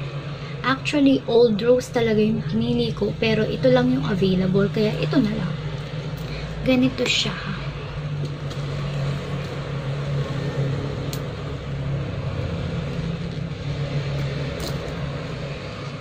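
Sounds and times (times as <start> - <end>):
low background rumble: 0.0 - 16.0.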